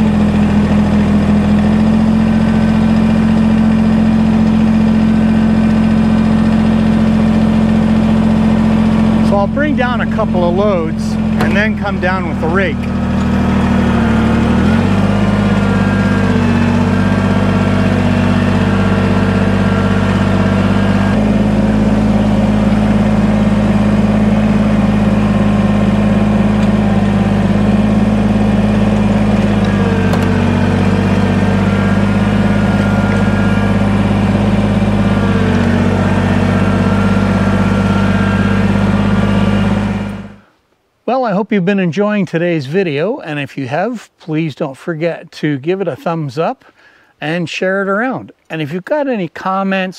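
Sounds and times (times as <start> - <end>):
tractor diesel engine running: 0.0 - 40.6, 44.9 - 47.4.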